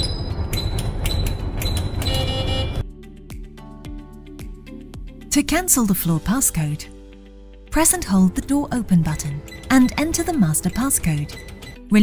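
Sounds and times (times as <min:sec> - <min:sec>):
elevator button beeps: 0:00.0 - 0:02.8, 0:09.2 - 0:12.0
background music: 0:00.0 - 0:12.0
multi-tone beep: 0:09.5 - 0:11.8.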